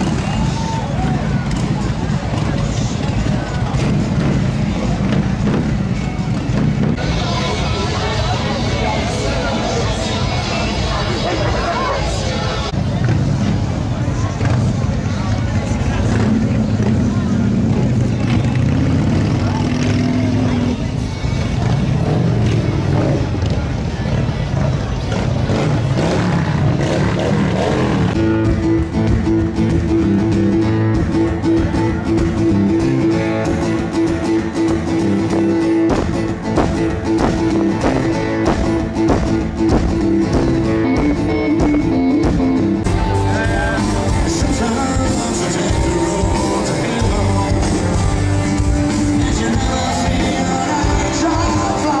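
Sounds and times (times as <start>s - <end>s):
crowd chatter: 0.0s - 52.0s
live band with guitars and drums: 0.0s - 52.0s
motorcycle engines: 0.0s - 52.0s.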